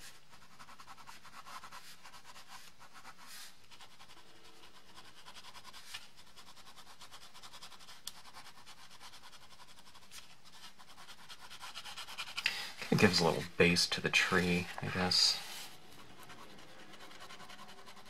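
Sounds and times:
pen scratching on card: 0.0s - 13.4s, 14.4s - 18.0s.

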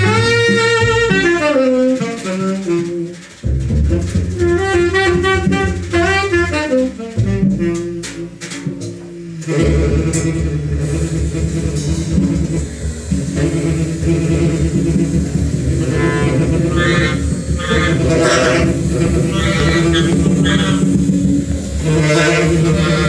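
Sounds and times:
clarinet: 0.0s - 23.0s
double bass: 0.0s - 23.0s
drums: 0.0s - 23.0s
saxophone: 0.0s - 23.0s.

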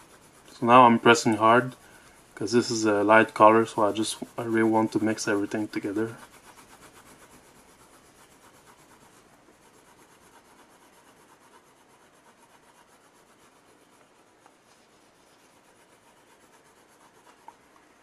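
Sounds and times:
pencil scratching on paper: 0.0s - 18.0s.

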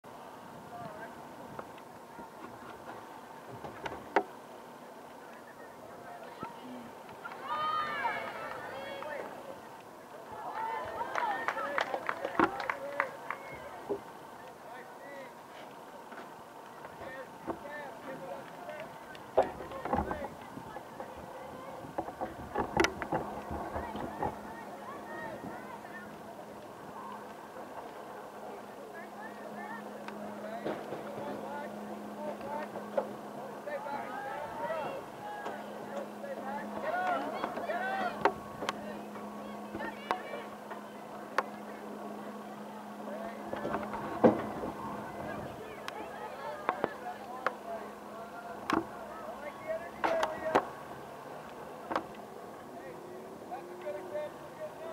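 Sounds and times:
steady low hum: 0.1s - 54.9s
distant shouts and calls: 4.6s - 54.9s
people shouting: 7.4s - 9.2s.

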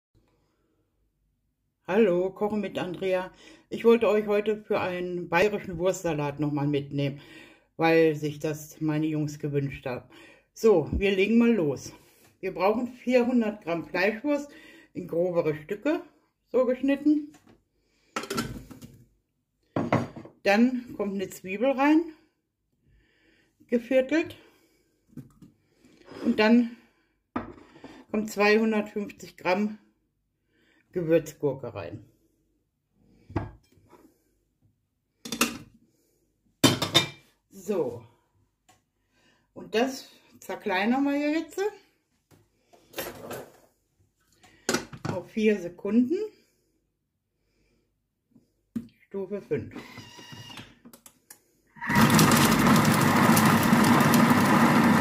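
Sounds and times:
kitchen object scraping clatter: 42.8s - 43.7s.

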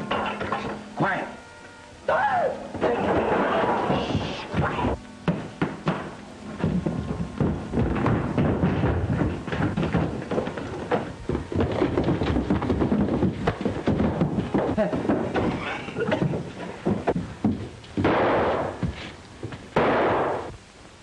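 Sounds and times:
objects and furniture thrown about: 2.7s - 20.5s.

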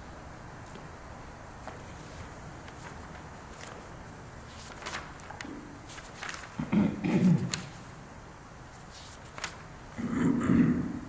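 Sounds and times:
man clearing his throat: 6.6s - 7.6s, 10.0s - 11.0s.

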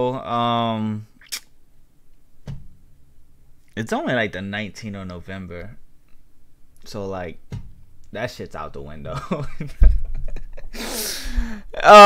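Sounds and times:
man laughing: 9.1s - 12.0s
man saying oh: 11.8s - 12.0s.

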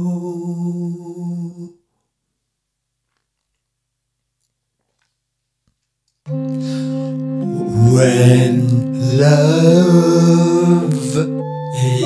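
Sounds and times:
person humming a long note: 0.0s - 1.7s, 6.3s - 12.0s.

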